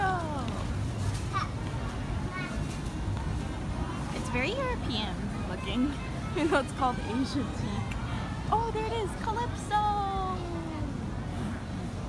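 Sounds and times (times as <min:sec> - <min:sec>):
outdoor crowd hum: 0:00.0 - 0:12.0.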